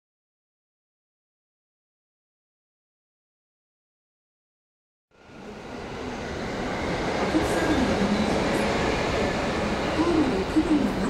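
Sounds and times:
train rumbling on tracks: 0:05.1 - 0:11.0.

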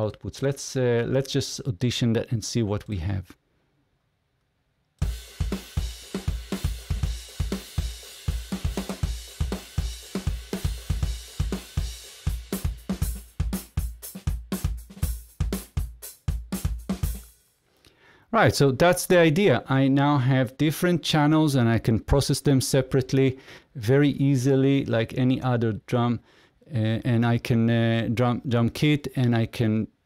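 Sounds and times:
rock drum groove: 0:05.0 - 0:17.6.

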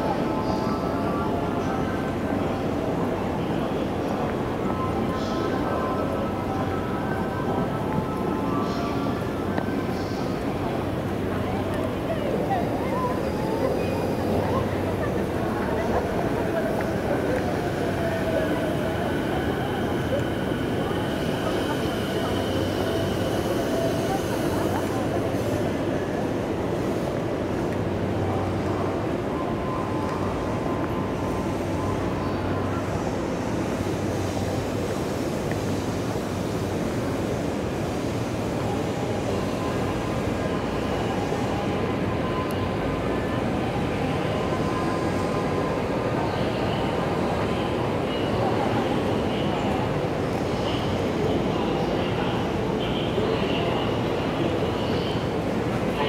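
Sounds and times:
crowd noise: 0:00.0 - 0:56.0
train running on tracks: 0:00.0 - 0:56.0.

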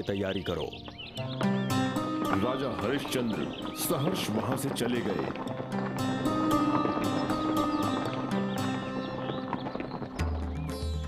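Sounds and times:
background music: 0:00.0 - 0:11.0
cartoon hooves galloping: 0:00.4 - 0:11.0.

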